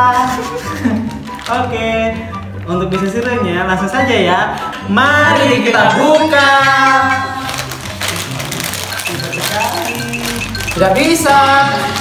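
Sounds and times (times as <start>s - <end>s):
background music: 0.0s - 12.0s
plastic packet crinkling: 1.0s - 3.9s, 7.2s - 12.0s.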